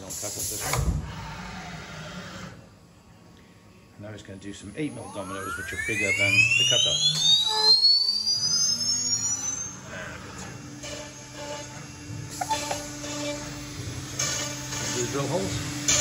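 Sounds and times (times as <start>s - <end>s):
router spindle whine and hum: 0.0s - 16.0s
router cutting wood: 4.9s - 16.0s.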